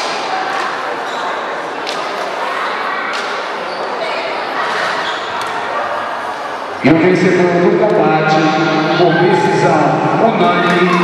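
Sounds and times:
crowd murmur in large hall: 0.0 - 11.0
man announcing over loudspeaker: 6.8 - 11.0.

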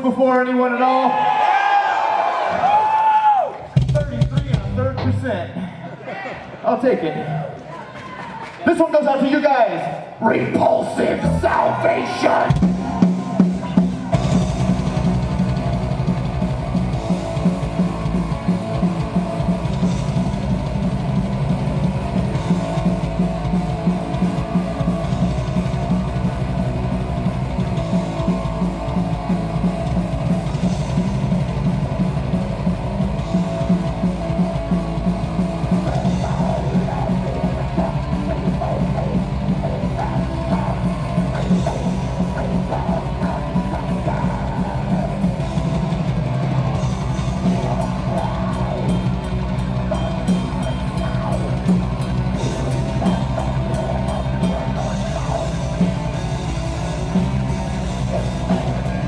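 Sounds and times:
drum kit with cymbals: 3.8 - 5.4, 11.2 - 59.0
metal band playing live: 3.8 - 5.5, 10.2 - 59.0
bass guitar: 3.8 - 5.7, 10.3 - 59.0
distorted electric guitars: 9.9 - 59.0.

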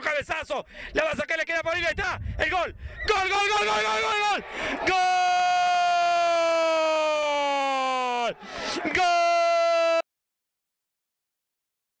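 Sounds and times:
person shouting: 3.4 - 10.0.

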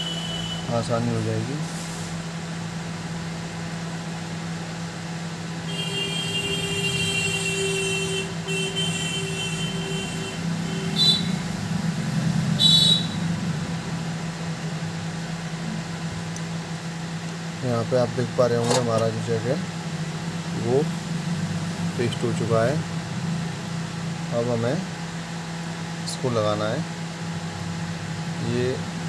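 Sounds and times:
steady low hum: 0.0 - 29.0
high-pitched squealing whine: 5.7 - 14.2.

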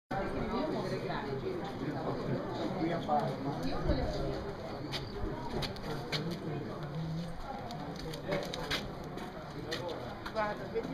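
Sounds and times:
murmur of voices: 0.1 - 10.9.

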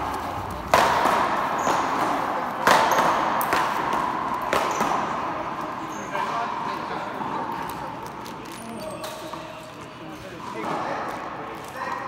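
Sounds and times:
paddleball sharp crack: 0.4 - 5.2.

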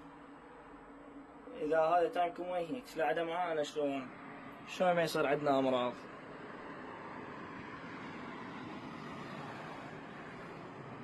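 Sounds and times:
outdoor background hiss and rumble: 0.0 - 11.0.

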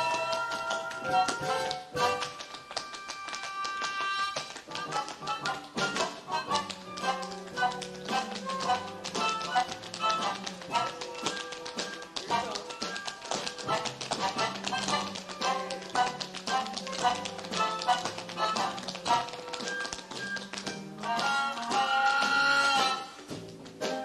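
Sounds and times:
instrumental show music: 0.0 - 24.0
tap shoes striking stage floor: 0.0 - 24.0.

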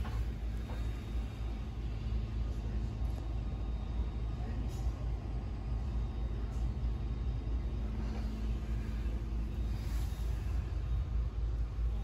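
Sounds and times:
faint indistinct voices: 0.0 - 12.0
faint steady hum: 0.0 - 12.0
low room rumble: 0.0 - 12.0.

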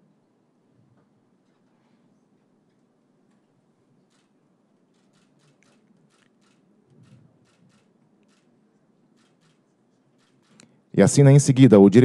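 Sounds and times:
low room hum: 0.0 - 12.0
camera shutter clicks: 5.0 - 8.5.

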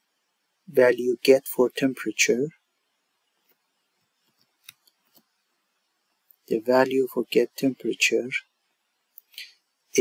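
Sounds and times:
faint computer mouse clicks: 4.2 - 5.3.

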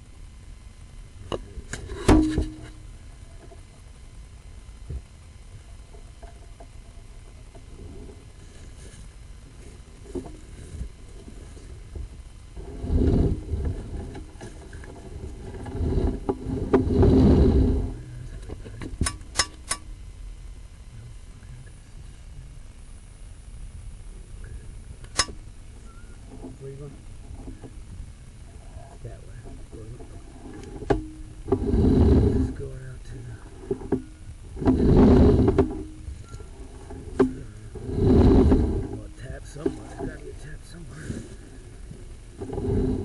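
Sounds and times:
cable scraping in a pipe: 12.6 - 19.8, 28.5 - 32.8, 33.4 - 43.0.

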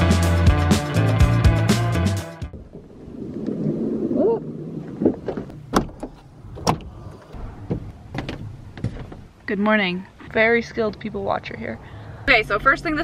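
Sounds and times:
background music: 0.0 - 2.5.

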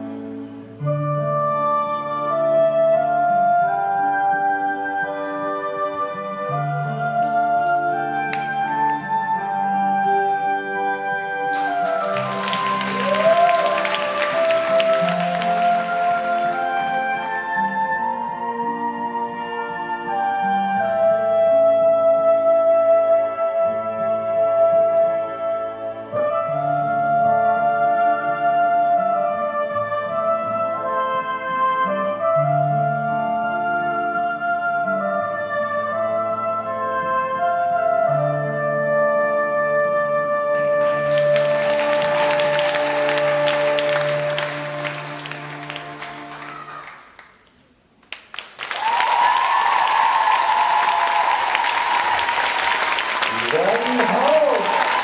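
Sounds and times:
woodwind-like music: 0.0 - 47.2, 48.5 - 55.0
audience applause: 11.4 - 17.6, 40.6 - 55.0
cheering: 11.5 - 17.4, 40.8 - 47.1, 48.4 - 55.0.

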